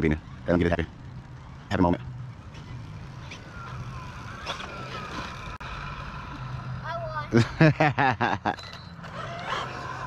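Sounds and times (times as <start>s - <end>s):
steady low hum: 0.0s - 10.0s
electric toy truck motor whining: 2.6s - 7.1s, 8.9s - 10.0s.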